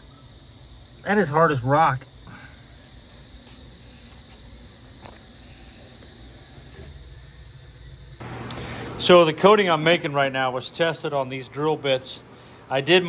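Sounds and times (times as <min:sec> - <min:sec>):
faint outdoor hiss: 0:00.0 - 0:13.0.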